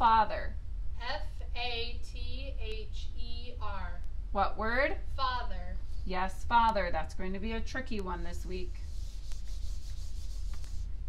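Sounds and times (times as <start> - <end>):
eraser rubbing on whiteboard: 8.4 - 11.0.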